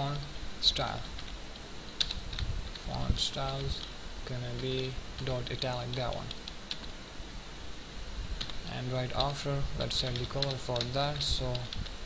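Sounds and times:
computer keyboard typing: 10.0s - 10.9s.

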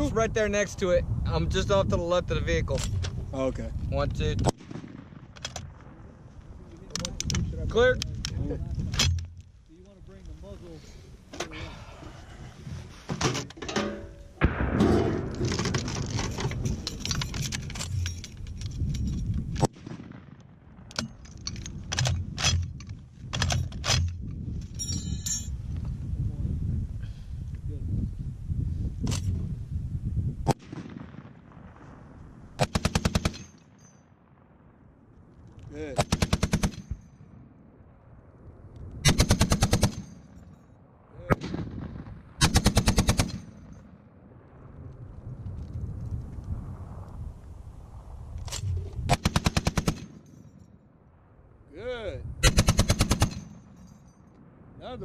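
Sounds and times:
machine gun firing bursts: 32.6s - 33.5s, 36.0s - 36.9s, 39.1s - 40.1s, 42.4s - 43.6s, 49.1s - 50.2s, 52.4s - 53.7s.

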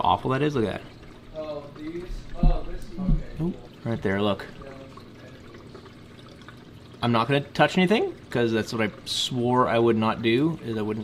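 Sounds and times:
water trickling and splashing: 0.0s - 11.0s.

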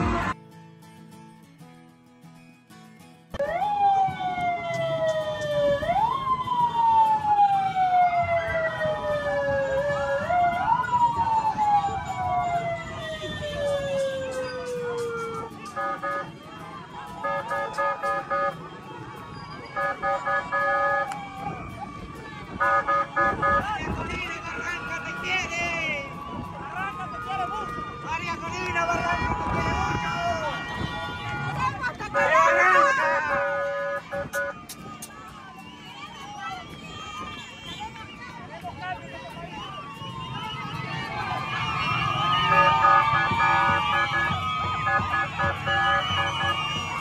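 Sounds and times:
vehicle siren wailing: 3.4s - 47.0s.

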